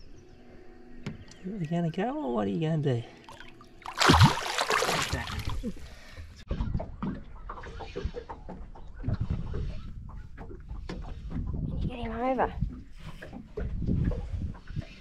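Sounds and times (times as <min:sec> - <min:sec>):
fish splashing at surface: 0:03.3 - 0:05.8
water wash: 0:03.8 - 0:05.7
wind noise: 0:09.0 - 0:15.0.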